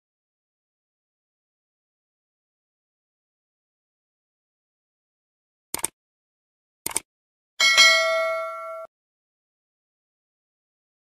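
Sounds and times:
notification bell ding: 0:07.6 - 0:08.9.

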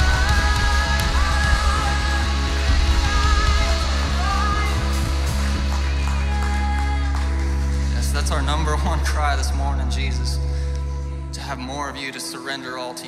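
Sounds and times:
electric guitar: 0:00.0 - 0:09.2
drums: 0:00.0 - 0:10.2.

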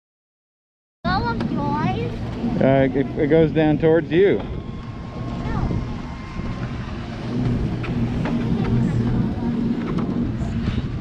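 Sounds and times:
conveyor lift humming: 0:01.1 - 0:11.0.

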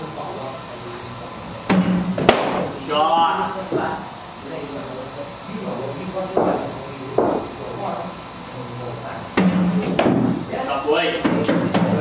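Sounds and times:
sharp knock: 0:01.7 - 0:02.7, 0:09.4 - 0:10.3.

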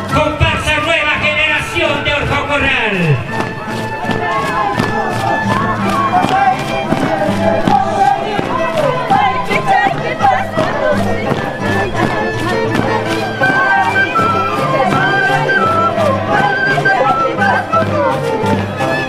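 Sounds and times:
crowd: 0:00.0 - 0:19.0
violin melody: 0:00.0 - 0:19.0
voices singing: 0:00.1 - 0:19.0.

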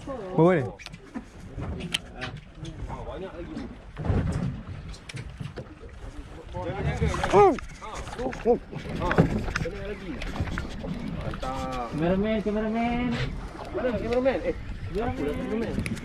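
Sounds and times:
sea water: 0:00.0 - 0:16.0
wind: 0:00.0 - 0:16.0.

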